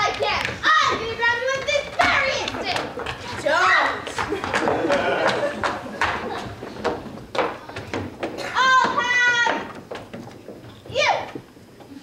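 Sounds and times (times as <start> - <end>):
children's voices: 0.0 - 4.2, 8.4 - 9.8.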